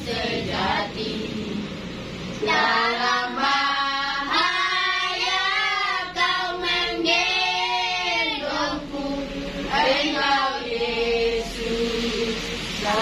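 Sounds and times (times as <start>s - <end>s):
children and women singing: 0.0s - 13.0s.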